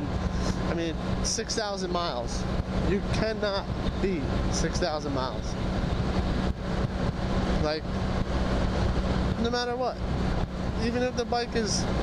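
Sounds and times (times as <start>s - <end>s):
motorcycle engine humming: 0.0s - 12.0s
wind noise: 0.0s - 12.0s.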